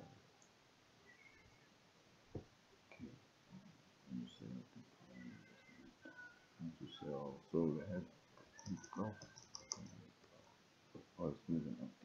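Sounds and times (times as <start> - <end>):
quiet voice: 2.9 - 10.1
computer keys and mouse clicks: 8.6 - 10.0.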